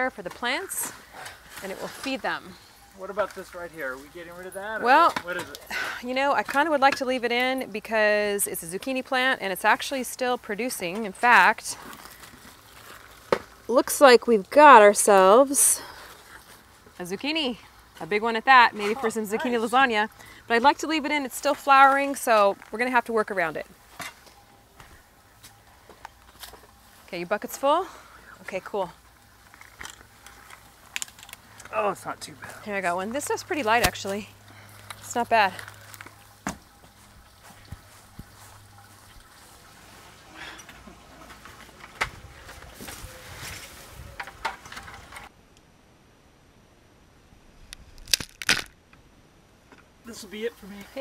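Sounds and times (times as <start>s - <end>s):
shovel scraping compost: 0.2s - 2.2s.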